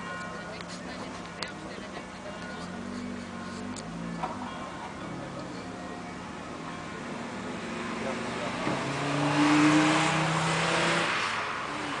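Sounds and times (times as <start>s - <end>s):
car engine passing by: 0.7s - 12.0s.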